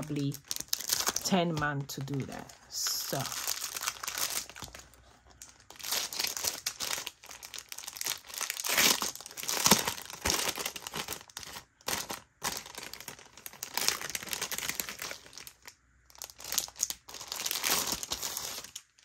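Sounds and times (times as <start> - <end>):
plastic packaging crinkling: 0.0 - 19.0.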